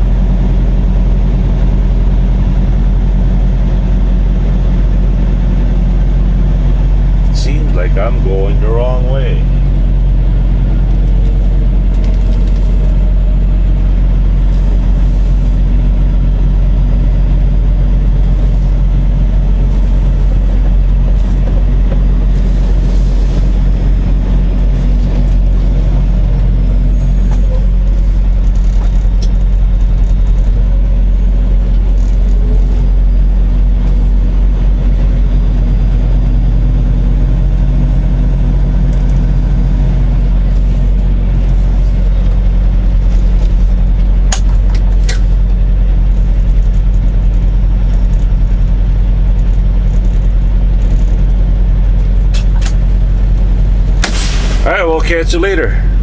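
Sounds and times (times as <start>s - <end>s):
diesel truck engine droning: 0.0s - 56.0s.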